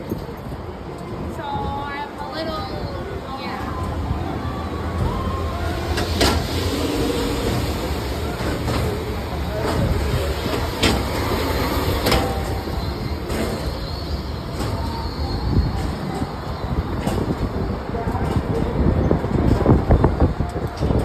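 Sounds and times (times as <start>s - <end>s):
faint background voices: 0.0s - 21.0s
ferris wheel rumbling: 0.0s - 21.0s.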